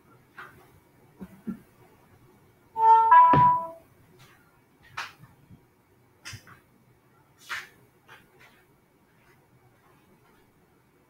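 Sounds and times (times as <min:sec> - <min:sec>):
robot speaker electronic chime: 0:02.8 - 0:03.8.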